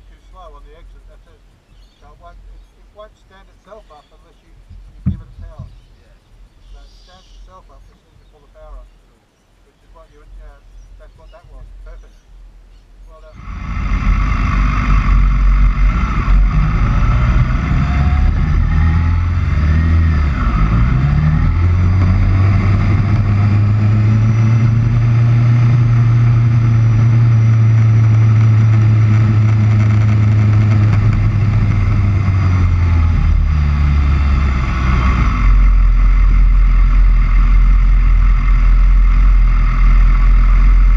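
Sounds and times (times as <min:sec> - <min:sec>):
wind and road noise: 0:00.0 - 0:40.9
motorcycle engine running: 0:13.2 - 0:40.9.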